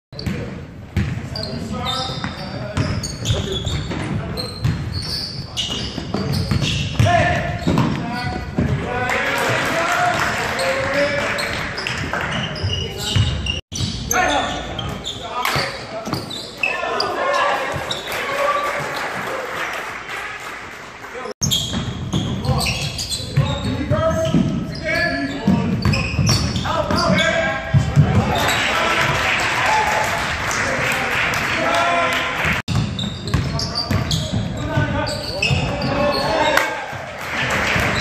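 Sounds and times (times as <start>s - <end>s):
players calling out: 21.5s - 38.0s.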